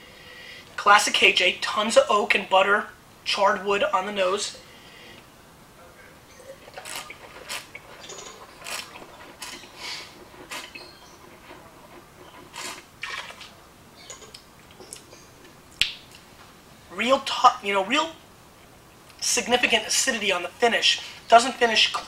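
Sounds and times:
person slurping wine: 6.4 - 13.6.

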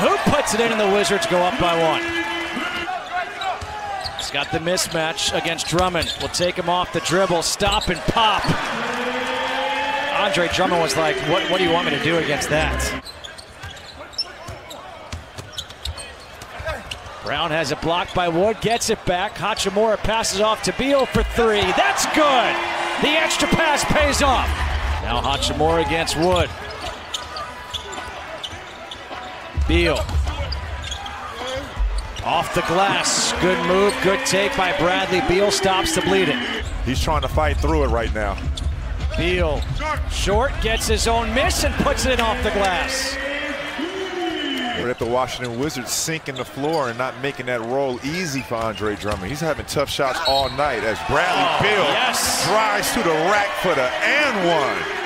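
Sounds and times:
arena crowd noise: 0.0 - 55.0.

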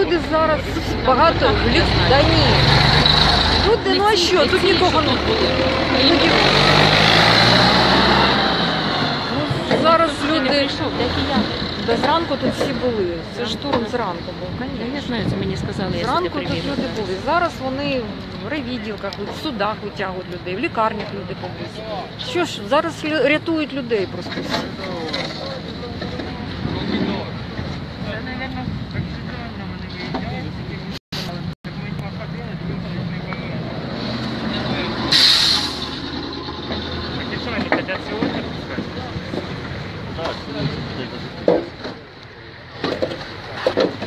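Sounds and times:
indistinct voices: 0.0 - 44.0.

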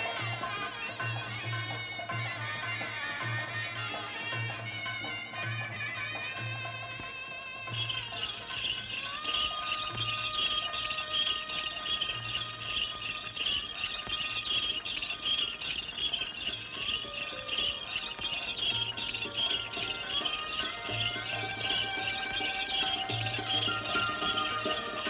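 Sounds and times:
small birds chirping: 6.4 - 25.0.

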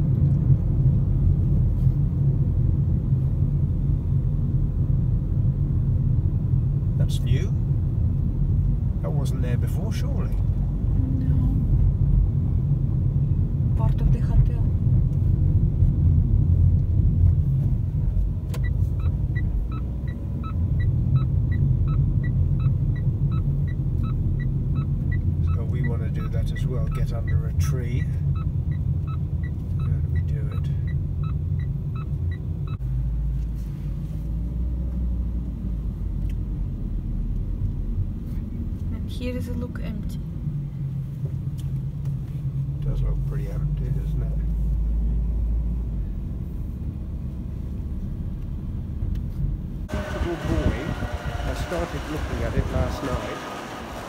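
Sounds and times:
car cabin road rumble: 0.0 - 54.0
turn signal ticking: 7.3 - 33.6.

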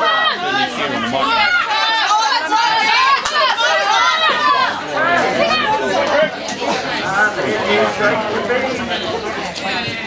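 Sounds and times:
spectators chattering and calling out: 0.0 - 10.0.

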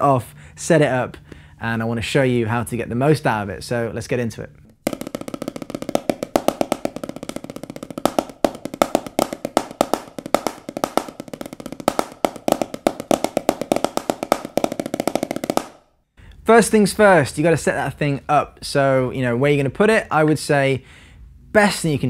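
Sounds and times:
drumsticks tapping on practice pad: 4.8 - 15.8.

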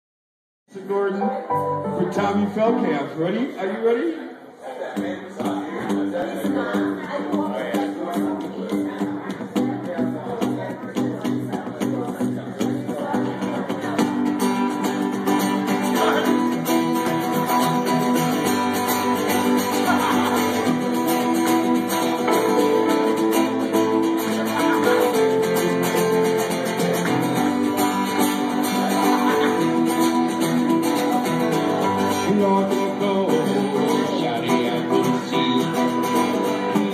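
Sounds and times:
electronic keyboard: 1.1 - 3.3, 16.0 - 36.7
strummed acoustic guitar: 4.9 - 36.9.

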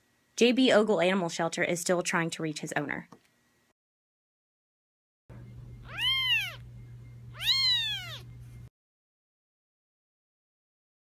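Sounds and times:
low steady hum: 5.3 - 8.7
kitten meowing: 5.8 - 6.7, 7.4 - 8.3.

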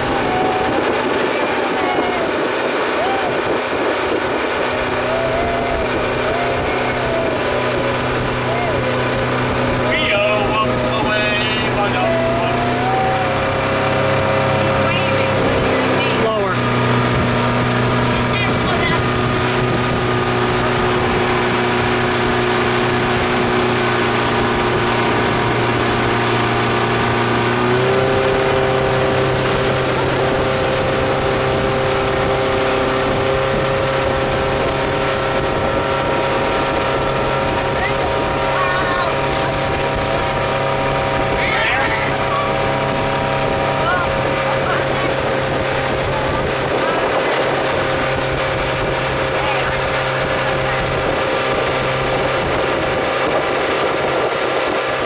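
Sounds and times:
motorboat engine running: 0.0 - 55.0
water rushing: 0.0 - 55.0.

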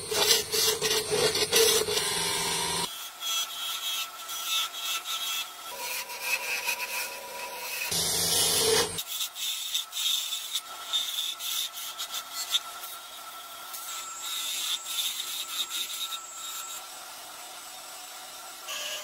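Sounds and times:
chisel scraping spinning wood: 0.0 - 2.9, 4.6 - 9.0.

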